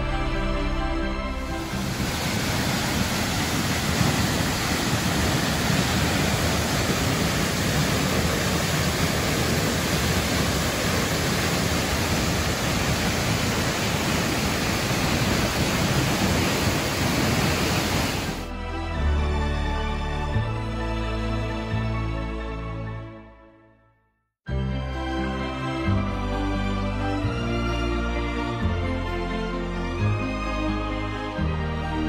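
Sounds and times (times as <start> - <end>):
waterfall rushing onto rocks: 1.5 - 18.5.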